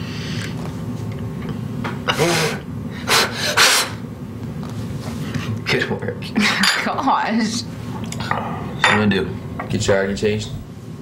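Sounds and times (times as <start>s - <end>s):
sharp puffs of breath: 2.2s - 4.0s.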